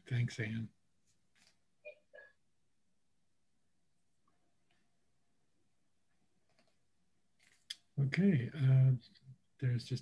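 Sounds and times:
person speaking: 0:00.0 - 0:00.8, 0:07.6 - 0:10.0.

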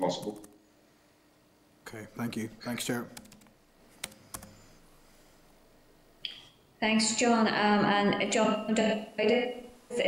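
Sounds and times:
laptop keyboard keystrokes: 0:03.2 - 0:04.6.

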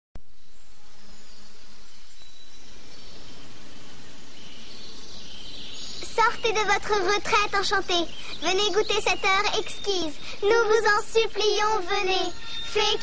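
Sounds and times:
buzzing insects: 0:02.9 - 0:13.0.

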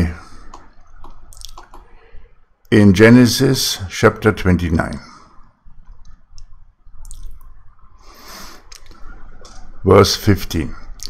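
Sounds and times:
man speaking: 0:00.0 - 0:00.5, 0:02.7 - 0:05.3, 0:09.8 - 0:11.0.

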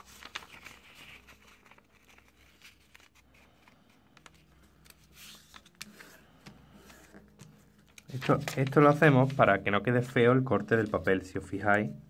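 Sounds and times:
paper being folded: 0:00.0 - 0:11.9.

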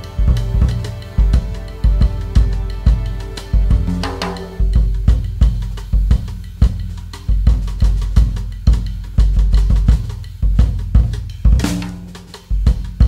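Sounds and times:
cymbal crash: 0:00.0 - 0:06.3
jazz drum kit playing: 0:00.0 - 0:13.0.

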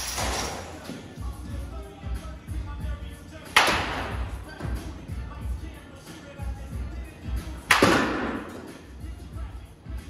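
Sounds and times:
background music with bass beat: 0:00.1 - 0:10.0
bat striking ball: 0:07.7 - 0:08.6.

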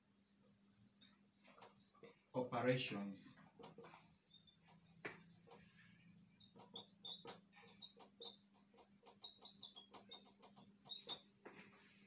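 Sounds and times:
marker squeaking on whiteboard: 0:01.0 - 0:02.3, 0:03.4 - 0:12.0.

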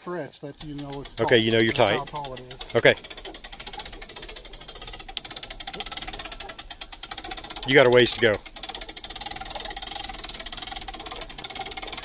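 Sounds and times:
hand crank winch clicking: 0:00.6 - 0:12.0.

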